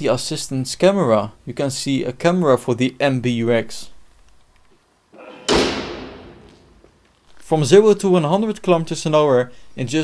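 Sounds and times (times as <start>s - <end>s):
car bonnet slamming: 5.2s - 6.5s.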